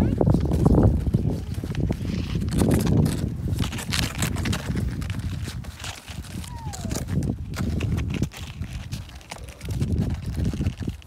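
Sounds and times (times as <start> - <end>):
low wind rumble on microphone: 0.0 - 11.0
sled crunching and scraping on snow: 0.0 - 11.0.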